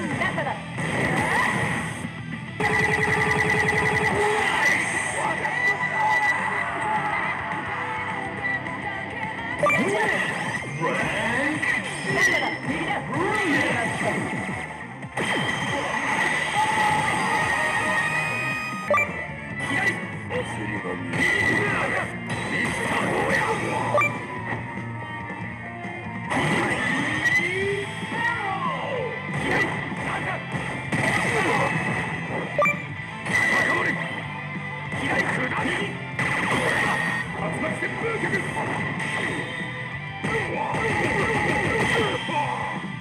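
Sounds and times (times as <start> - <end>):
game background music: 0.0 - 43.0.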